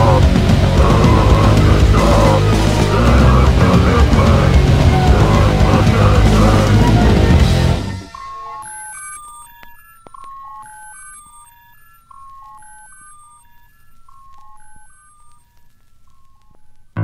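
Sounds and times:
electronic beeping melody: 0.0 - 17.0.

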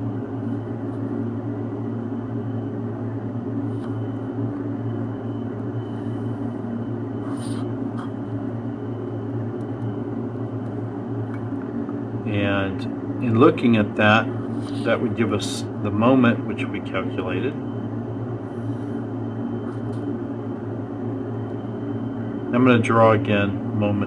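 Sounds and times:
low room hum: 0.0 - 24.0.

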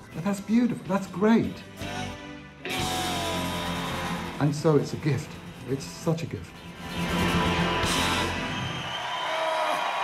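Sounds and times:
live band music: 0.0 - 8.9
audience cheering: 7.5 - 10.0.

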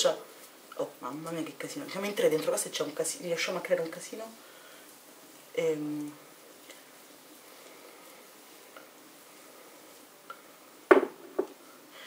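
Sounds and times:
sharp knock: 10.9 - 11.5.

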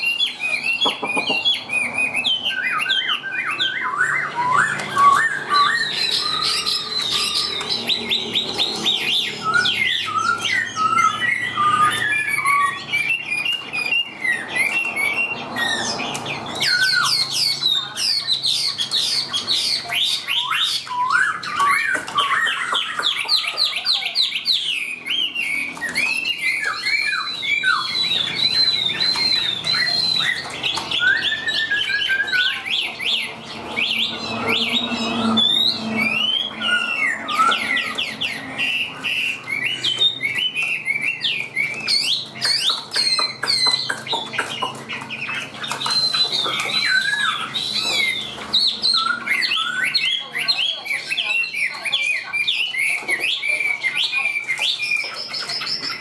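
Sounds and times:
bird singing varied song: 0.0 - 56.0.

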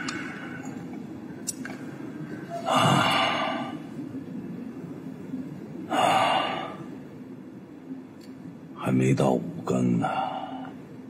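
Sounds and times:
man gasping breaths: 2.5 - 3.8.

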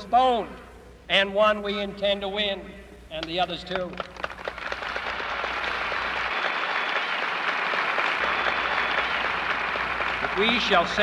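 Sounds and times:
crowd applauding: 3.8 - 11.0.

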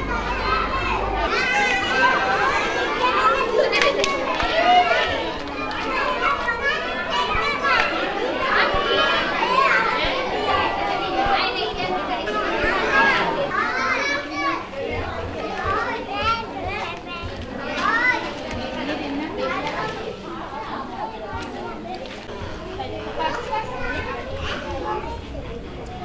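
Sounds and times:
young children chattering: 0.0 - 26.0.

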